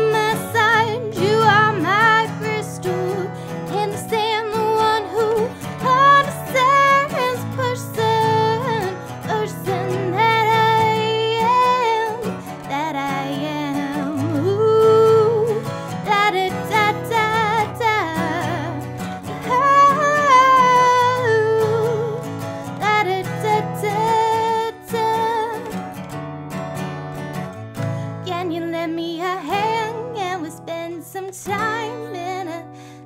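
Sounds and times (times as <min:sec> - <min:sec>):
woman singing: 0:00.0 - 0:26.2, 0:27.8 - 0:33.0
strummed acoustic guitar: 0:00.0 - 0:33.0.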